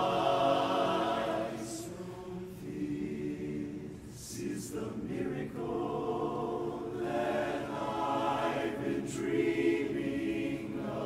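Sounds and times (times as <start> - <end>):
men's chorus singing a cappella: 0.0 - 11.0.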